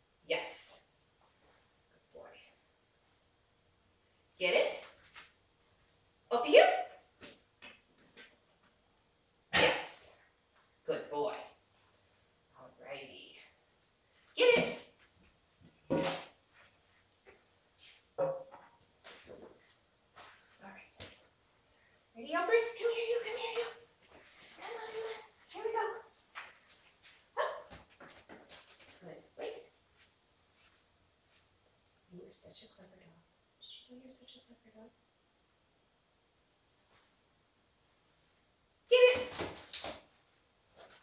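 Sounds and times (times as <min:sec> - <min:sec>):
dog scuffling steps: 0:23.6 - 0:29.0
dog barking: 0:27.4 - 0:27.7.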